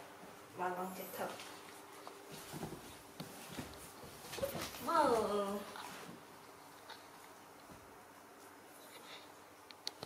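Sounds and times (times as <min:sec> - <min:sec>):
faint taps and rustles on a bed: 0:01.3 - 0:06.3.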